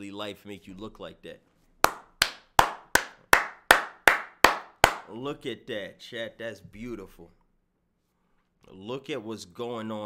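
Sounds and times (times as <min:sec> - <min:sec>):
person clapping hands: 0:01.8 - 0:05.1.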